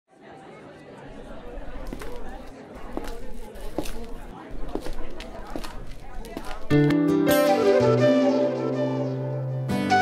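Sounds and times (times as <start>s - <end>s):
chatter of voices: 0.1s - 6.8s.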